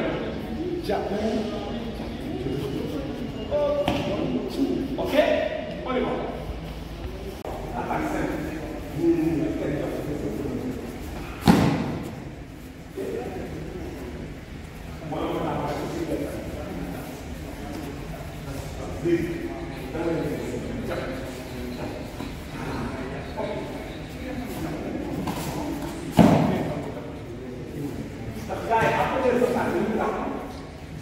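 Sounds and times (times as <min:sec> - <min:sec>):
loud impact thump: 0:11.4 - 0:12.0
sharp smack ringing in hall: 0:11.4 - 0:12.1.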